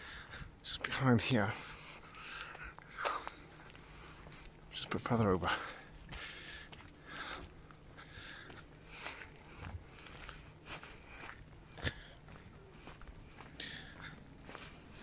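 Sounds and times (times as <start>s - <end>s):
footsteps on tarmac: 0.0s - 15.0s.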